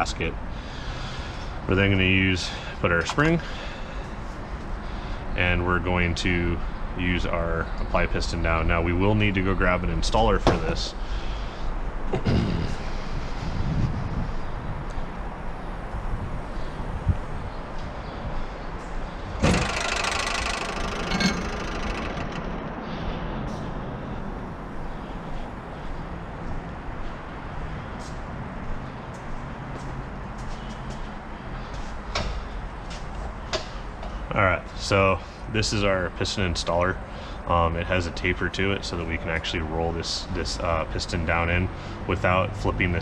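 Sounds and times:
steady low hum: 0:00.0 - 0:43.0
loud scraping rattle: 0:19.2 - 0:24.1.

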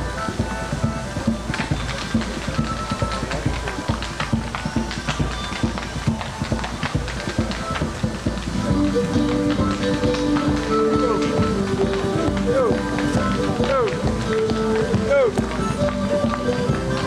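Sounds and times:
dance music playing: 0:00.0 - 0:17.0
dance shoes tapping on pavement: 0:00.0 - 0:17.0.

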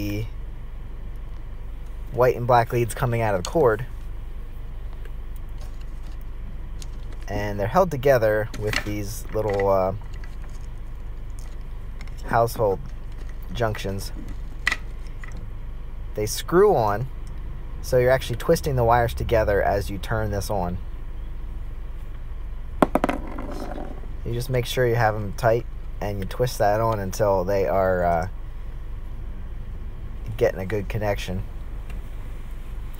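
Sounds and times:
low background hum and hiss: 0:00.0 - 0:32.9
sharp knocks: 0:22.8 - 0:24.0.

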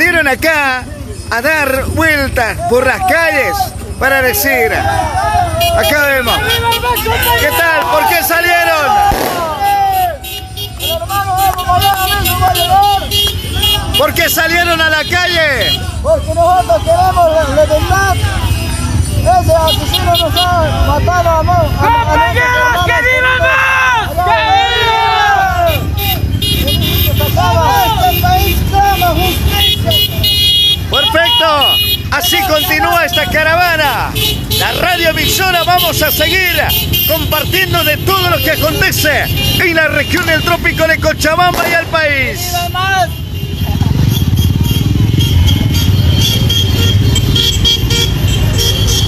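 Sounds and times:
motorcycle and car engines running: 0:00.0 - 0:22.8, 0:25.2 - 0:49.0
voices shouting: 0:00.0 - 0:49.0
vehicle horns honking: 0:03.3 - 0:49.0.

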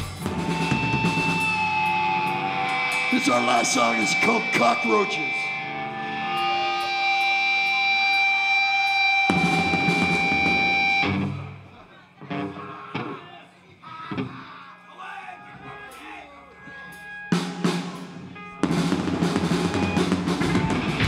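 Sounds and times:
electric guitar feedback tones: 0:00.0 - 0:13.2, 0:15.4 - 0:21.0
quiet guitar sounds: 0:00.0 - 0:14.6
crash of drums and guitar: 0:17.4 - 0:21.0.

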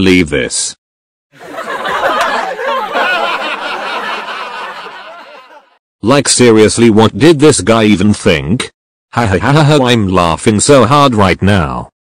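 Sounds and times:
voices chuckling and snickering: 0:01.4 - 0:05.8.

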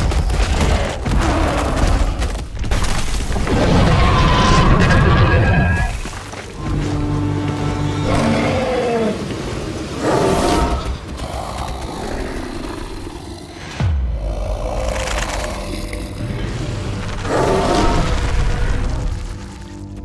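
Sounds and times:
monster growls and roars: 0:00.0 - 0:02.6, 0:03.3 - 0:06.2, 0:07.9 - 0:19.8
dramatic orchestral score: 0:03.5 - 0:20.0.

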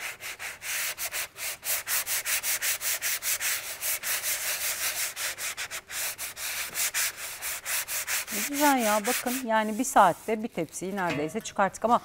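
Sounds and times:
sanding block scratching: 0:00.0 - 0:10.9.

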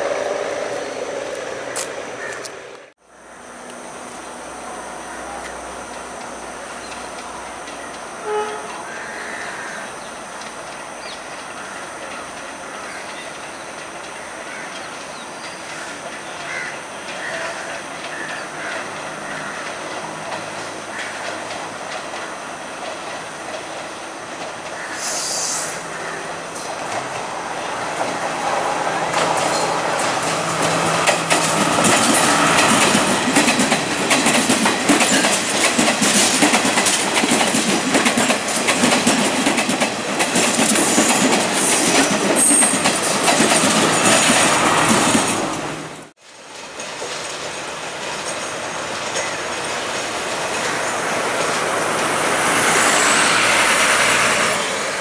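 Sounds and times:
diesel train passing: 0:00.0 - 0:55.0
train approaching: 0:00.0 - 0:55.0
wheels clattering over rail joints: 0:09.9 - 0:25.0, 0:26.4 - 0:55.0
wheel squeals: 0:40.8 - 0:45.4.

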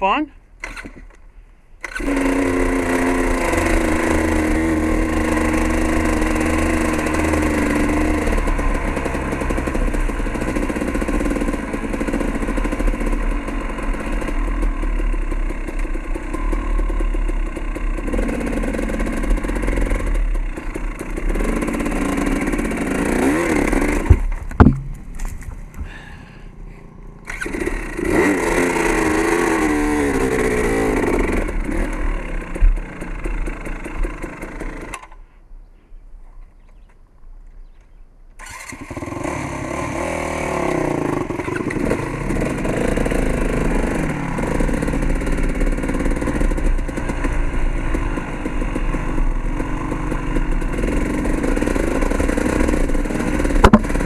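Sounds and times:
dirt bike engine revving: 0:01.8 - 0:35.2, 0:38.4 - 0:54.0
sharp knocks: 0:24.0 - 0:25.9, 0:53.6 - 0:54.0.

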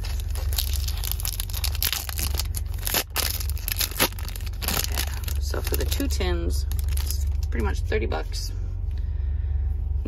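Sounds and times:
foil wrapper tearing and crinkling: 0:00.0 - 0:07.5
truck engine idling: 0:00.0 - 0:10.0.

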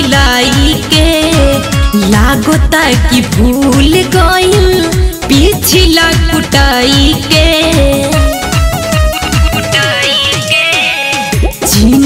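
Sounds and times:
person singing: 0:00.0 - 0:08.3, 0:09.0 - 0:12.0
devotional song instrumental: 0:00.0 - 0:12.0
drum strikes: 0:08.0 - 0:12.0.

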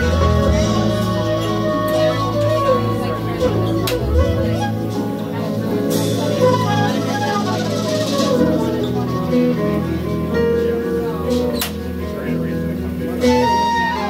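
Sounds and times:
flute solo: 0:00.0 - 0:10.1, 0:13.1 - 0:14.0
drums: 0:00.0 - 0:14.0
electric bass: 0:00.0 - 0:14.0.

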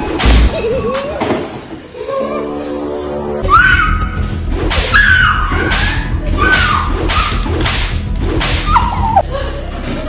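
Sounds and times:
cane swishing lashes: 0:04.4 - 0:09.2.

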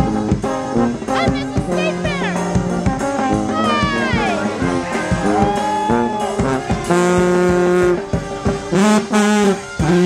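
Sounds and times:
marching brass band playing: 0:00.0 - 0:10.0
trombone: 0:00.0 - 0:10.0.

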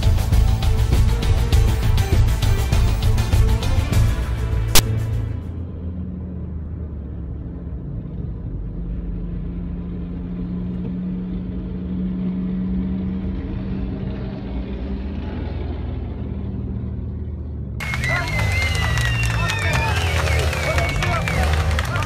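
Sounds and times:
road noise: 0:00.0 - 0:22.0
car engine drone: 0:03.0 - 0:22.0.

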